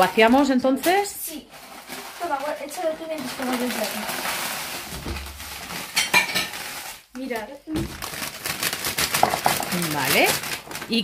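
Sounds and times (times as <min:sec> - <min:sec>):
chip bag crinkling: 0:00.0 - 0:11.0
crumbs falling into glass dish: 0:08.8 - 0:11.0.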